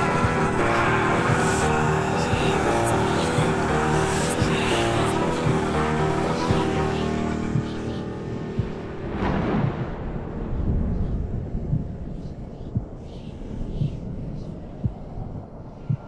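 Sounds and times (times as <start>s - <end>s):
dull low thumps: 6.4s - 16.0s
thunder rumbling: 8.5s - 13.0s
whoosh: 8.8s - 14.4s
wind: 8.9s - 16.0s.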